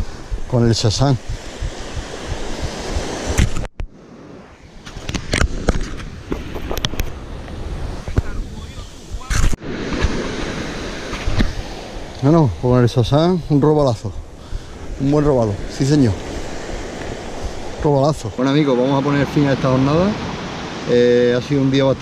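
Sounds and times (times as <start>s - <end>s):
surf washing onto beach: 0.0s - 22.0s
wind on microphone: 0.0s - 22.0s.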